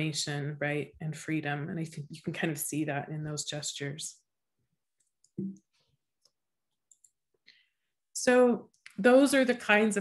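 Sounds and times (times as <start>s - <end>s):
woman talking: 0.0s - 4.2s, 8.2s - 10.0s.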